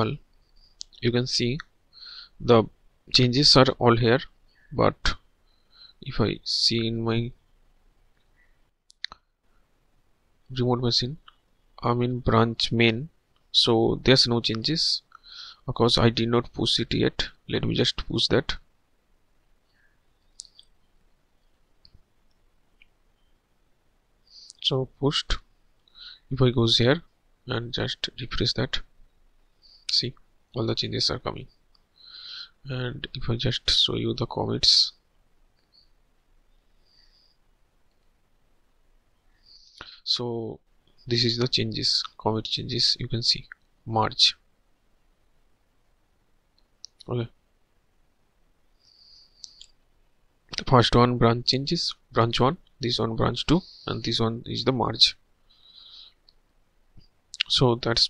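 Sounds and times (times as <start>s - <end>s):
faint hiss: 0.0s - 58.0s
faint sharp clicks: 20.3s - 20.8s.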